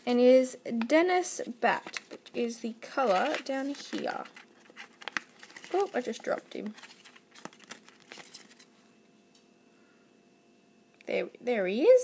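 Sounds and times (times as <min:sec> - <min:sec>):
paper rustling: 0:01.8 - 0:02.4, 0:03.0 - 0:08.7.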